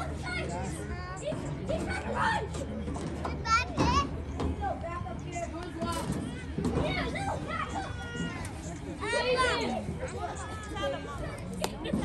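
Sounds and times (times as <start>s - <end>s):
overlapping voices talking: 0.0s - 12.0s.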